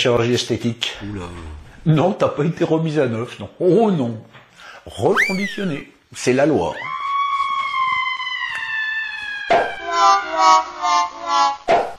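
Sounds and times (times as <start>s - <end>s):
high whistle-like tone sliding down: 5.1s - 5.8s, 6.8s - 11.9s.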